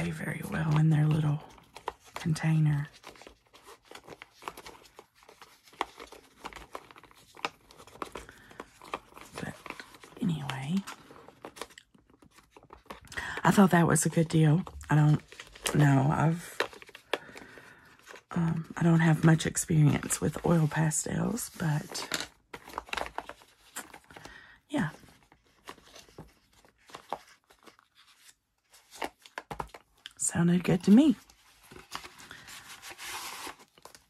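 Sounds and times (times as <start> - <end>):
paper rustling: 0.0 - 13.1, 13.9 - 30.0, 30.6 - 34.0.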